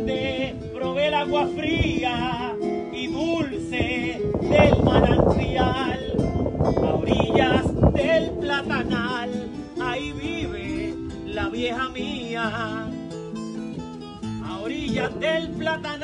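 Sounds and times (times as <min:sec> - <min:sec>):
cuatro and acoustic guitar: 0:00.0 - 0:16.0.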